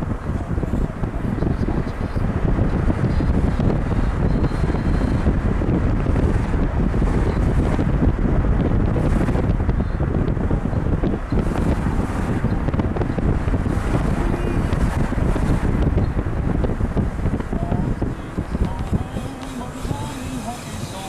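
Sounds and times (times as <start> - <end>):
car driving rumble: 0.0 - 21.0
wind buffeting microphone: 0.0 - 21.0.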